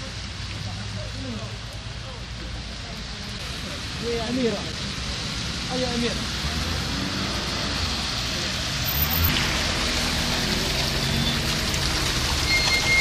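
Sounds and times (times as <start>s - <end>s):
car tyres hissing on wet road: 0.0s - 13.0s.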